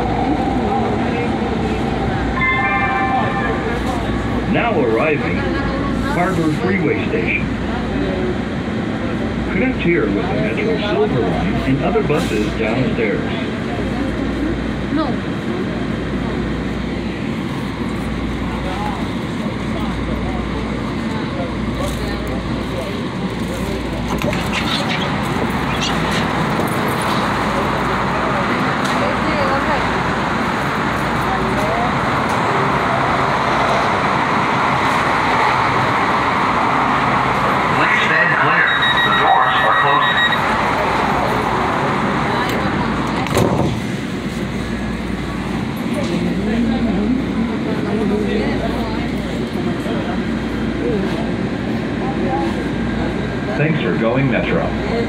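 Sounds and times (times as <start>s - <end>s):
freeway traffic: 0.0s - 55.0s
light-rail train rumble: 0.0s - 55.0s
high ringing tone: 2.3s - 4.5s, 38.4s - 40.6s.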